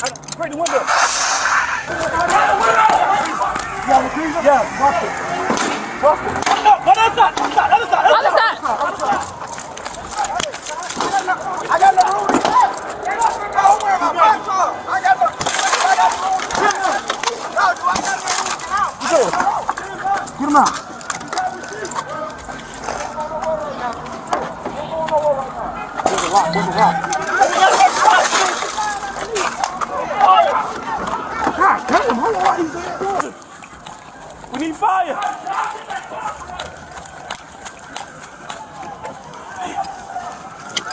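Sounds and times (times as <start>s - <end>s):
hissing noise bursts: 0.7s - 7.7s
people shouting: 0.7s - 22.4s, 24.8s - 33.2s.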